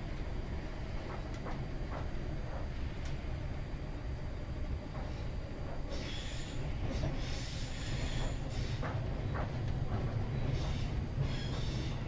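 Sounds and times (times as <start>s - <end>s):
train running gear rumble: 0.0s - 12.0s.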